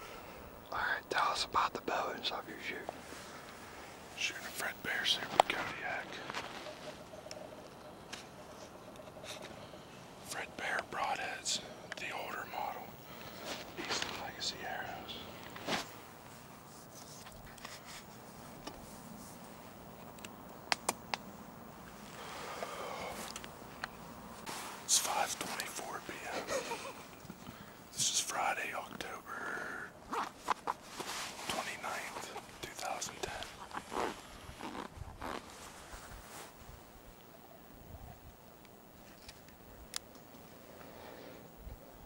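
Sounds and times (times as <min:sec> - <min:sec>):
man whispering: 0:00.6 - 0:03.0, 0:04.1 - 0:06.4, 0:10.2 - 0:15.4, 0:24.8 - 0:26.6, 0:27.9 - 0:30.0, 0:31.4 - 0:33.6
sharp clicks: 0:20.0 - 0:21.2.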